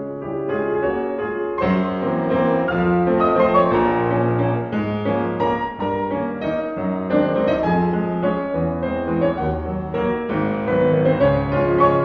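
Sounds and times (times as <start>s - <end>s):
soft slow piano music: 0.0s - 12.0s.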